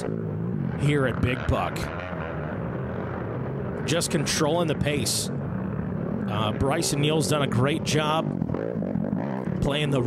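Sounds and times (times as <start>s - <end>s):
atv engine droning: 0.0s - 10.0s.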